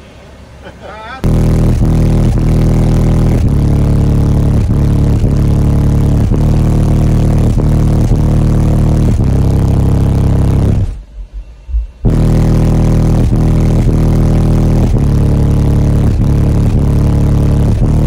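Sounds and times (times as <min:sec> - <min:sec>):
bass-heavy music through subwoofer: 0:01.2 - 0:18.0.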